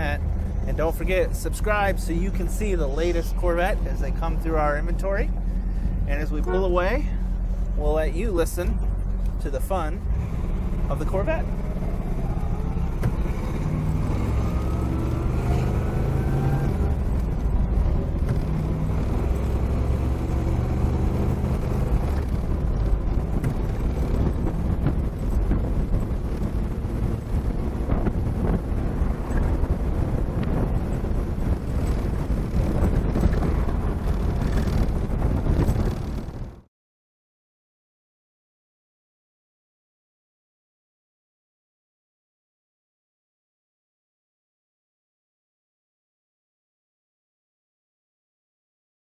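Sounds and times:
car engine accelerating: 0.0 - 36.7.

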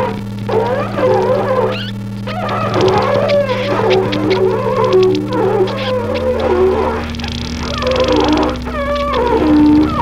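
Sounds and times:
bass saxophone sliding tones: 0.0 - 10.0
electric guitar drone: 0.0 - 10.0.

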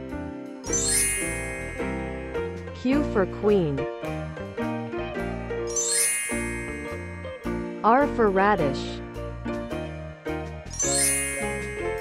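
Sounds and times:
children's background music: 0.0 - 12.0
bright tinkling chime: 0.6 - 2.8, 5.7 - 7.7, 10.7 - 12.0.

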